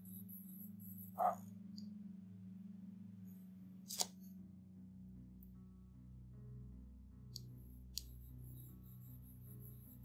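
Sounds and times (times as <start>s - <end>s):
steady low drone: 0.0s - 10.0s.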